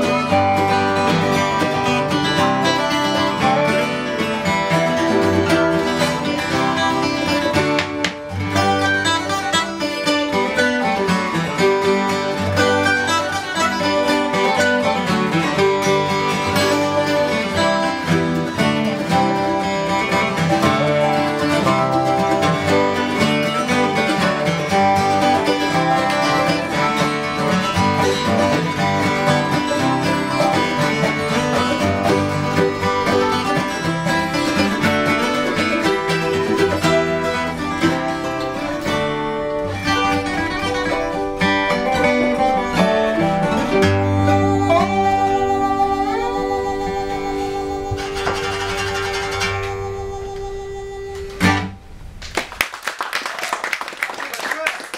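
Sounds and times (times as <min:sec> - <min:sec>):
slide guitar: 0:00.0 - 0:52.2
mandolin: 0:00.0 - 0:52.4
acoustic guitars: 0:00.0 - 0:52.7.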